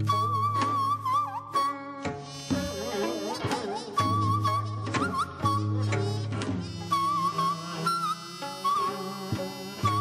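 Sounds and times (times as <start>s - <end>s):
high wavering wind melody: 0.0s - 10.0s.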